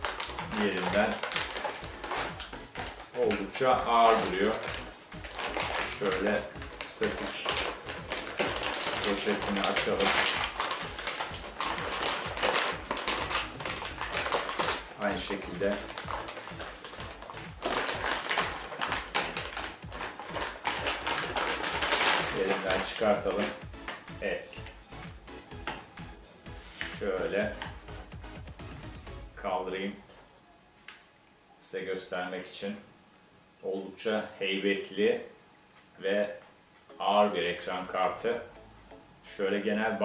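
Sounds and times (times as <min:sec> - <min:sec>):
plastic bag crinkling: 0:00.0 - 0:24.8.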